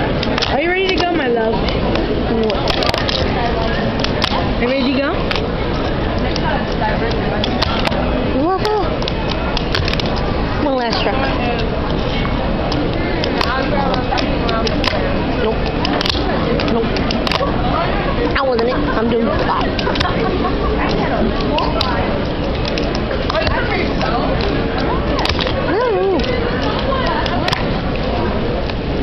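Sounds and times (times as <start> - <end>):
loud steady background noise: 0.0 - 29.0.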